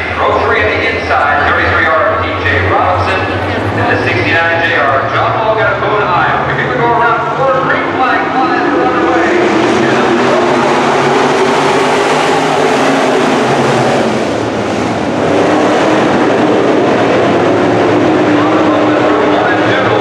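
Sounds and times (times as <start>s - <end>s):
race car engines roaring: 0.0s - 20.0s.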